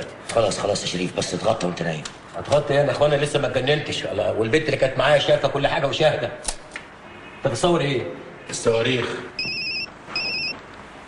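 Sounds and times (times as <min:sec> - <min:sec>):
telephone warbling ringtone: 0:09.4 - 0:10.6.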